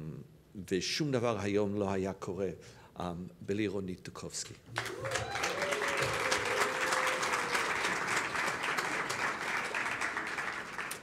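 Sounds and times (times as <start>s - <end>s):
audience applauding: 4.8s - 11.0s.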